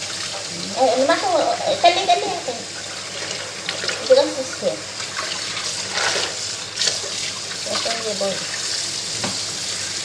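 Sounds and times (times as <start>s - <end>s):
tap water running into sink: 0.0s - 10.0s
person speaking: 7.7s - 8.4s.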